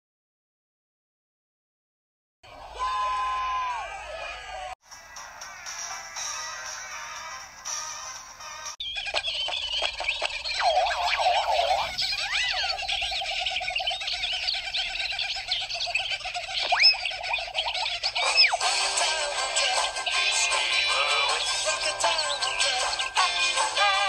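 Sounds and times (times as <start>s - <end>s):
chorus of chirping whistling calls: 8.8s - 24.0s.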